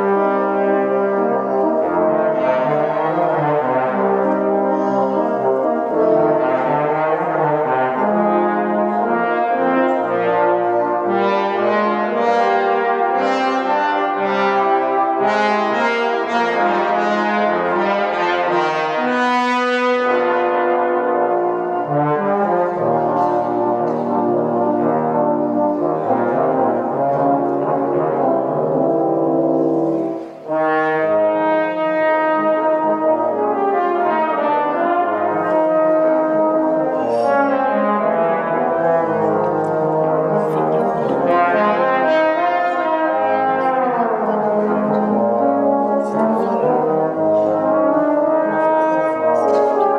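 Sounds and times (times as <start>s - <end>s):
trombones playing jazz harmony: 0.0s - 49.9s.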